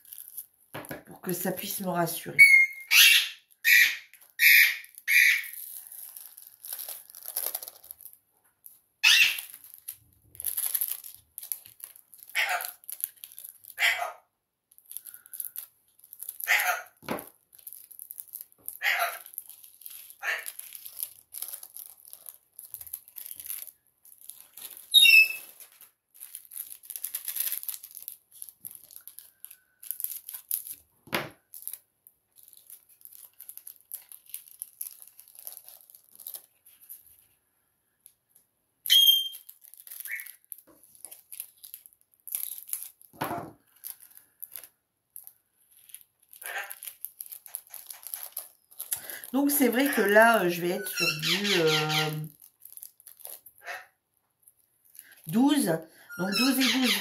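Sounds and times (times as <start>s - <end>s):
plastic bags crinkling: 0.0s - 2.4s, 3.5s - 13.8s, 14.7s - 37.4s, 38.1s - 53.6s, 54.4s - 57.0s.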